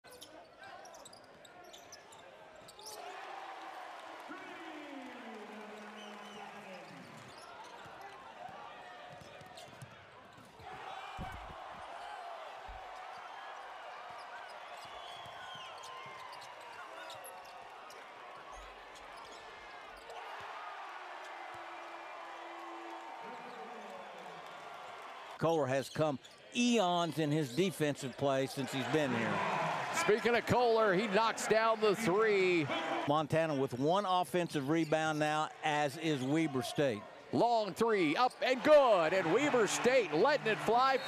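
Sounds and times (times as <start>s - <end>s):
crowd noise: 26.7s - 41.0s.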